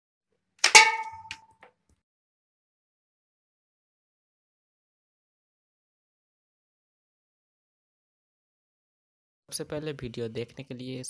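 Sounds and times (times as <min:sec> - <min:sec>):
metallic clack with ringing: 0:00.6 - 0:01.4.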